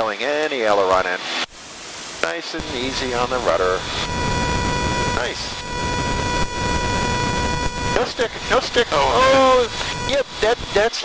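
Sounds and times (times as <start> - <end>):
aircraft engine and airflow: 1.2 - 11.0
constant whine: 1.4 - 11.0.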